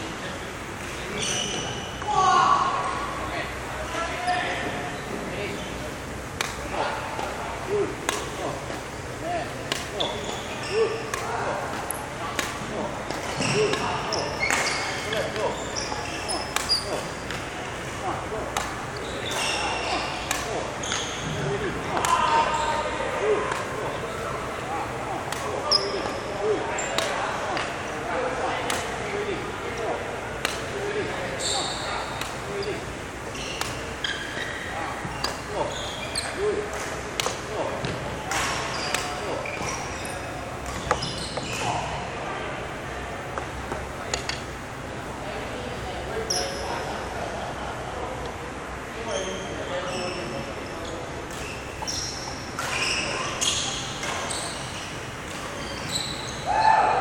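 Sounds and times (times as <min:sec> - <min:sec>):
rackets hitting shuttlecocks: 0:06.3 - 0:07.4, 0:08.0 - 0:08.9, 0:09.5 - 0:22.5, 0:23.4 - 0:24.6, 0:25.2 - 0:25.7, 0:30.4 - 0:30.8, 0:32.0 - 0:32.5, 0:33.3 - 0:35.6, 0:36.7 - 0:41.8
shoes squeaking on wooden floor: 0:09.9 - 0:12.1, 0:12.7 - 0:17.4, 0:18.9 - 0:21.7, 0:31.4 - 0:36.5, 0:37.8 - 0:42.0, 0:49.1 - 0:54.9, 0:55.6 - 0:56.4.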